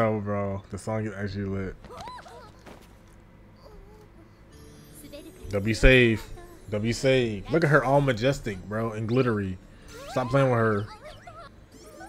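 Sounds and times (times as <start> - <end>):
low steady hum: 0.0 - 12.0
high-pitched squeaky cry: 1.9 - 2.7, 9.9 - 12.0.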